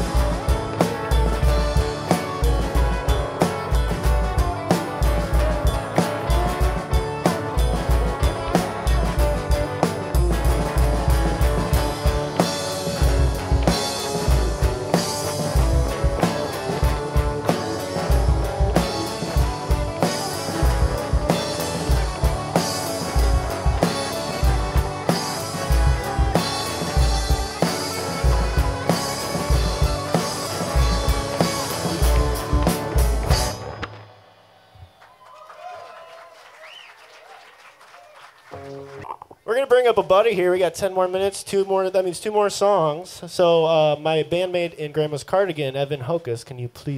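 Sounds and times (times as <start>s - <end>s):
live folk-rock band playing: 0.0s - 34.6s, 38.5s - 43.9s.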